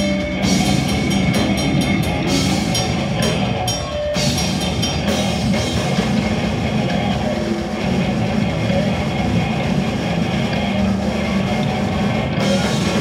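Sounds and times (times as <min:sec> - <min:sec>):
death metal band playing live: 0:00.0 - 0:13.0.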